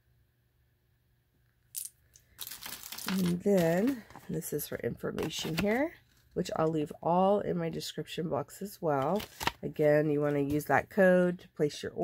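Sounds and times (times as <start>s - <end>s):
handling noise of bagged beads: 1.8s - 4.4s.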